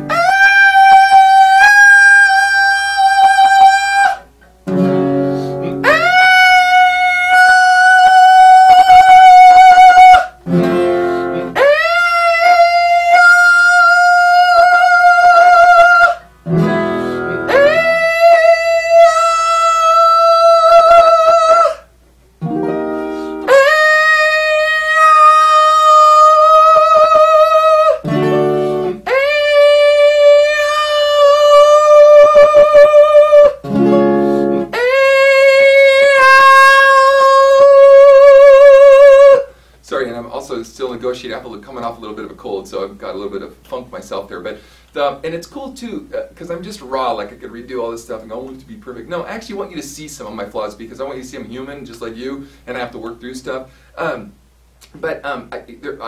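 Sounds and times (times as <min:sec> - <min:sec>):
singer holding high note: 0:05.3 - 0:21.9, 0:22.7 - 0:39.6.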